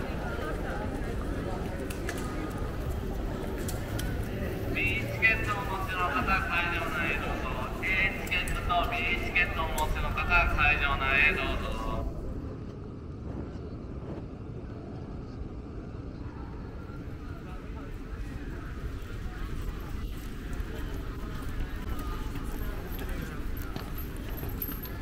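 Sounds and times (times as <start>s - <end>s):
crowd noise: 0.0s - 25.0s
low rumble of traffic: 0.0s - 25.0s
voices of passersby: 0.0s - 25.0s.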